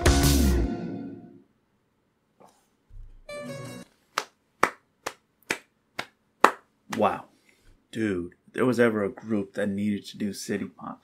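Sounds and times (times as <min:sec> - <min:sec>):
person clapping hands: 0:04.1 - 0:07.2.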